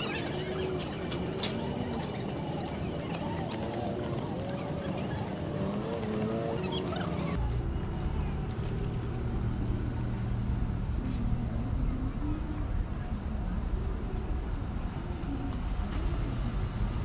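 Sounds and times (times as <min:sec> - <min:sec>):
cars passing: 0:00.0 - 0:17.0
low rumble of engines and tyres: 0:00.0 - 0:17.0.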